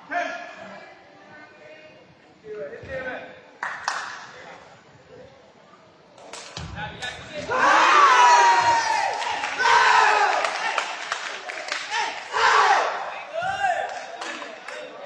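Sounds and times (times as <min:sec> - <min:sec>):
players shouting in celebration: 0:07.5 - 0:11.0, 0:11.7 - 0:14.0.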